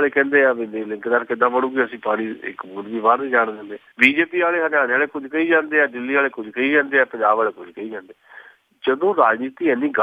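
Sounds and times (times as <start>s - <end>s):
man talking: 0.0s - 8.2s, 8.8s - 10.0s.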